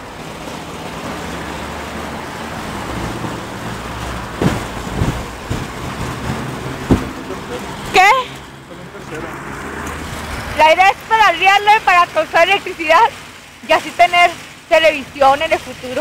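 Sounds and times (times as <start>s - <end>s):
vehicle engine and tyre noise: 0.0s - 16.0s.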